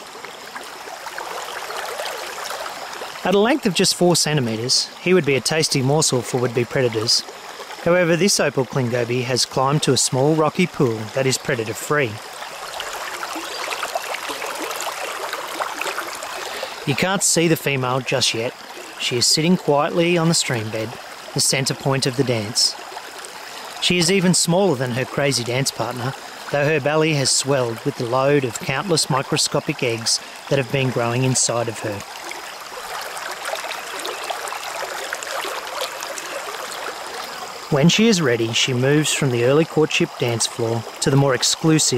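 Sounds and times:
stream water flowing into pool: 0.0s - 41.9s.

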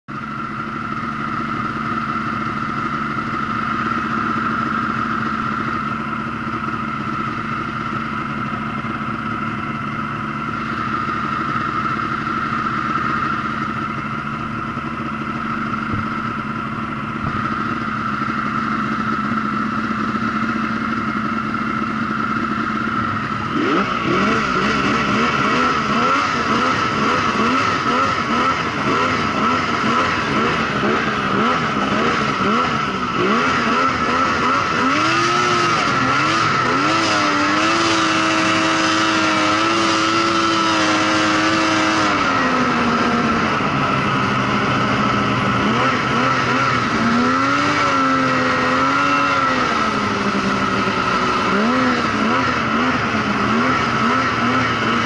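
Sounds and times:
snowmobile engine revving: 0.9s - 55.0s.

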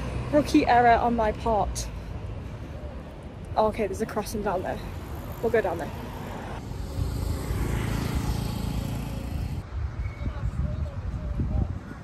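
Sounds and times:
road noise: 0.0s - 12.0s
vehicle engine hum: 4.6s - 9.7s.

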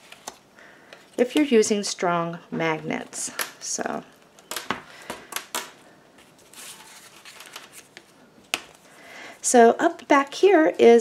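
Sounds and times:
paper rustling: 6.2s - 8.9s.

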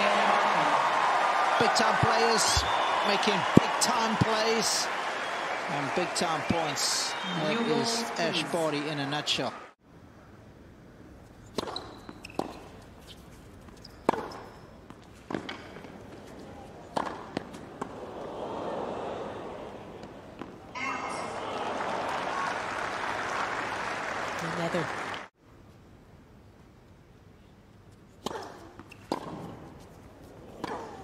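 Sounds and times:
crowd applauding and cheering: 0.0s - 9.7s, 21.0s - 25.3s
racquet striking tennis ball: 11.5s - 12.7s, 14.1s - 14.5s, 16.9s - 18.0s, 28.2s - 29.7s, 30.5s - 31.0s.

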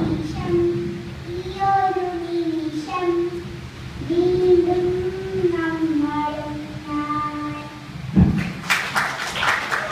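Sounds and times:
girl singing into microphone: 0.0s - 7.9s.

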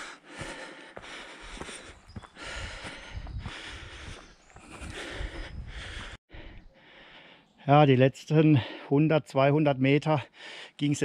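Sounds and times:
footsteps clicking on trail: 0.0s - 7.2s
person breathing hard: 0.0s - 7.5s, 10.3s - 10.8s.

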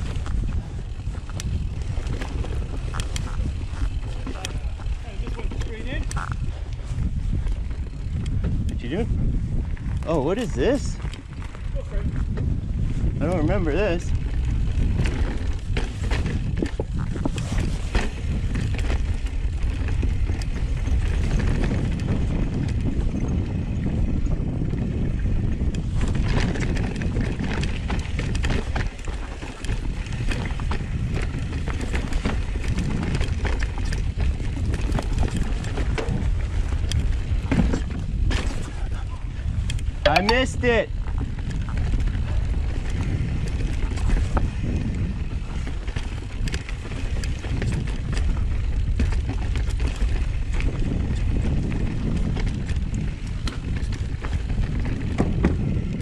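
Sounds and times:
bike rattling over rocks: 0.0s - 56.0s
bike tyres on dirt and rock: 0.0s - 56.0s
wind on microphone: 0.0s - 56.0s.

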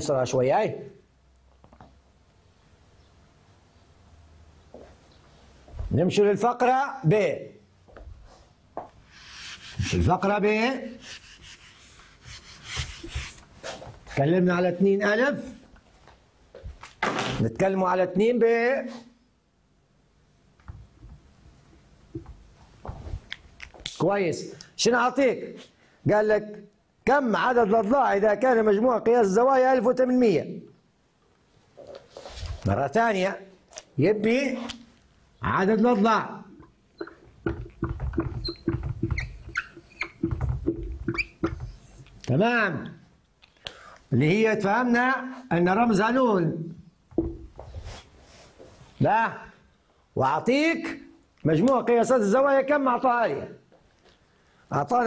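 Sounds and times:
eraser scratching on whiteboard: 9.1s - 10.2s, 10.9s - 13.5s
whiteboard marker squeaking: 37.0s - 42.1s
dull bumps of board: 37.4s - 39.2s.

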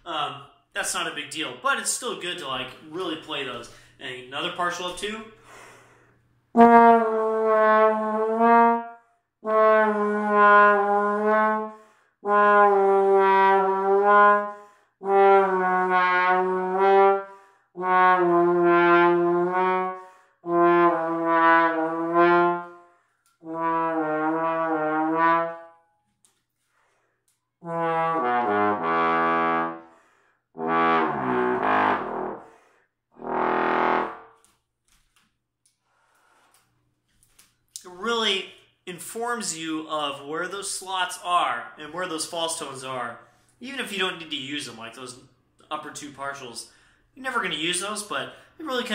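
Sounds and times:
bass trombone long notes: 6.6s - 22.8s, 23.4s - 25.8s, 27.6s - 29.8s, 30.6s - 32.5s, 33.2s - 34.3s.

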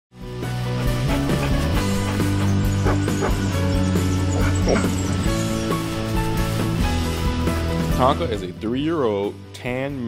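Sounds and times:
background music: 0.2s - 10.0s
dog barking: 1.1s - 3.4s.

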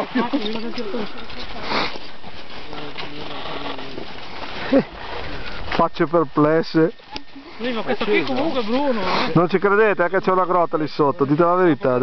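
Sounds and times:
distant group talking: 0.0s - 12.0s.

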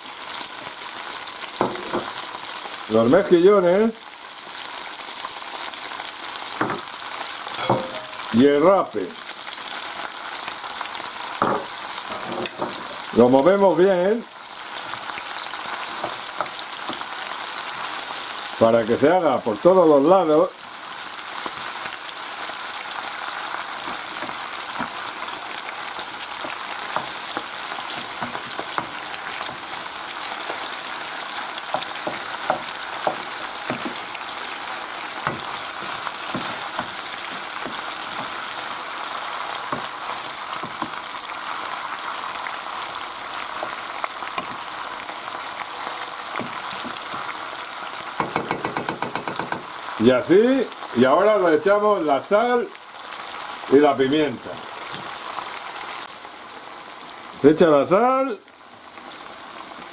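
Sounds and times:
seafood sizzling in a frying pan: 0.0s - 59.9s
wooden spoon stirring: 23.5s - 49.7s.

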